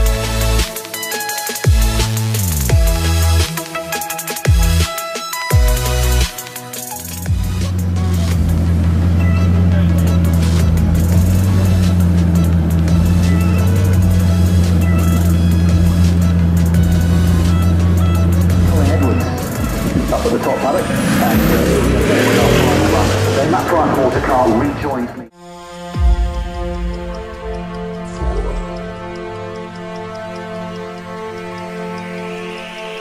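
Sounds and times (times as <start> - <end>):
background music: 0.0 - 33.0
car engine running: 5.5 - 25.3
crowd voices: 18.6 - 25.3.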